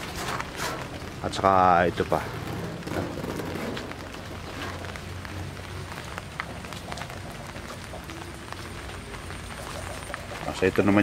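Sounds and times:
light rain falling: 0.0 - 11.0.

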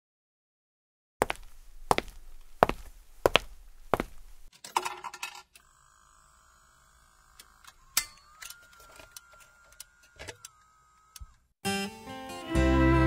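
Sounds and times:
faint thin whine: 5.6 - 11.5.

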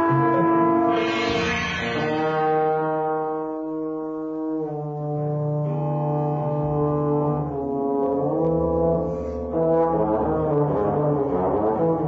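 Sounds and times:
trombone long held notes: 0.0 - 12.0
sustained overlapping tones: 0.4 - 3.8.

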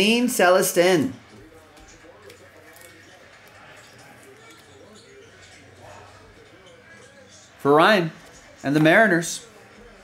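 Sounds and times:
faint voice: 1.3 - 7.6.

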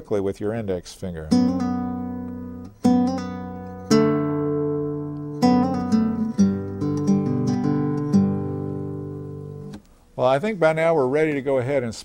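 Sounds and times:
fingerstyle acoustic guitar: 1.3 - 9.8.

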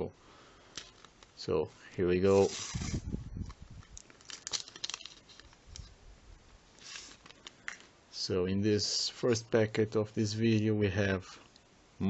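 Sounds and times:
sticker packet wrapper crinkling: 0.8 - 1.4, 2.2 - 6.0, 6.8 - 7.9
packet tearing: 2.3 - 5.9, 6.8 - 7.9.

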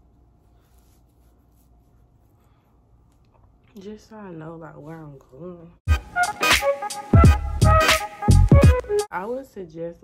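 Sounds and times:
rustling of hair: 0.0 - 3.3
faint room hum: 0.0 - 5.8.

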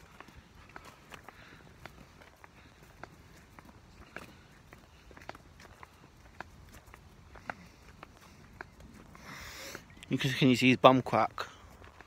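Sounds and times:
footsteps on dirt path: 0.0 - 12.0.

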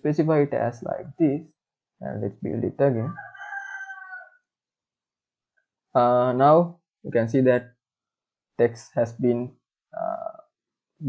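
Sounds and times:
person speaking: 0.0 - 1.4, 2.0 - 3.2, 6.0 - 7.6, 8.6 - 10.3.

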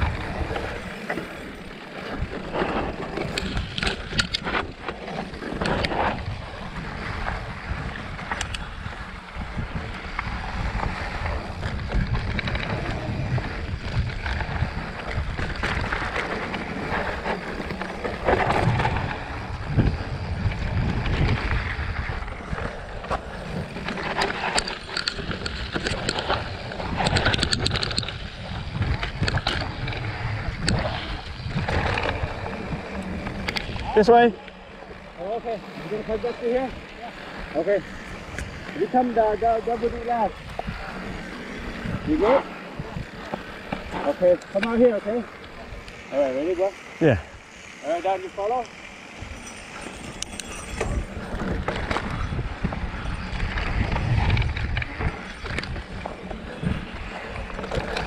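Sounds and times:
bike knocking and rattling: 0.0 - 58.0
bike tyres on dirt and rock: 0.0 - 58.0
wind on microphone: 0.0 - 58.0.

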